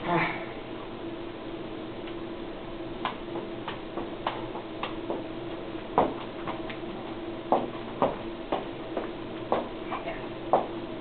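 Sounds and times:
low room hum: 0:00.0 - 0:11.0
footbag tapping on shoes: 0:03.0 - 0:10.8.

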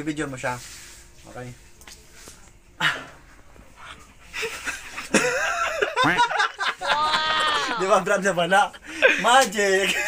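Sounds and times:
person yelping: 0:06.8 - 0:08.0.

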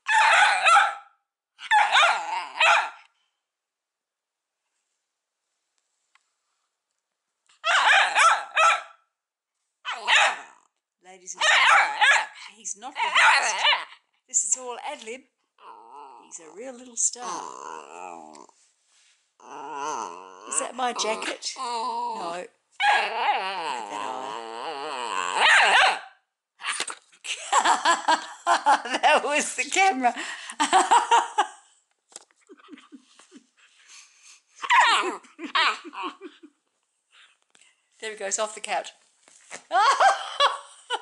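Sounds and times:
puppy yapping: 0:00.1 - 0:01.0, 0:01.6 - 0:03.0, 0:07.6 - 0:09.0, 0:09.9 - 0:10.6, 0:11.4 - 0:12.4, 0:13.0 - 0:14.0, 0:21.6 - 0:23.5, 0:25.4 - 0:26.1
puppy whining: 0:19.4 - 0:26.0, 0:34.6 - 0:36.5.

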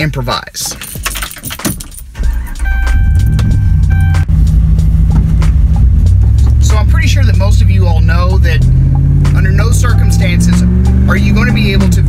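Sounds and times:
keys jangling in ignition: 0:00.6 - 0:03.5
car engine starting and running: 0:00.8 - 0:12.0
dashboard warning chime: 0:02.2 - 0:04.4, 0:09.8 - 0:10.6.

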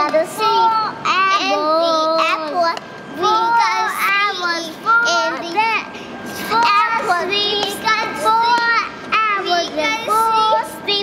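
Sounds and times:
girls singing a chant: 0:06.4 - 0:11.0.

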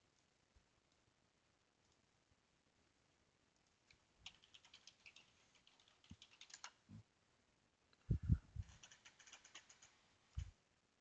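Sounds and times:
computer keyboard typing: 0:04.2 - 0:06.8, 0:08.6 - 0:10.0.

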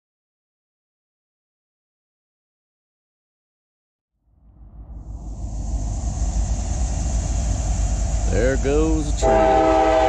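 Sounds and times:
freight train rumbling on bridge: 0:04.4 - 0:10.0
steady high hiss: 0:04.6 - 0:10.0.

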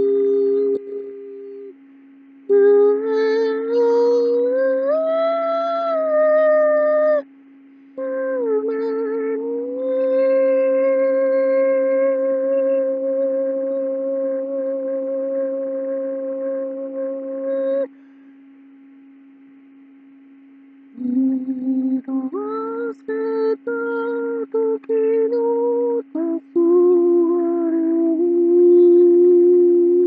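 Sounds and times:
man singing howl-like notes: 0:00.0 - 0:01.8, 0:02.5 - 0:07.3, 0:08.0 - 0:17.9, 0:21.0 - 0:30.0
low drone tone: 0:00.0 - 0:20.1, 0:20.9 - 0:30.0.

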